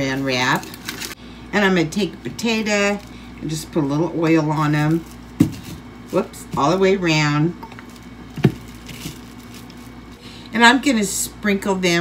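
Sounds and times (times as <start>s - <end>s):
plastic wrap crinkling: 0.0s - 1.2s, 4.5s - 6.9s, 7.6s - 10.2s.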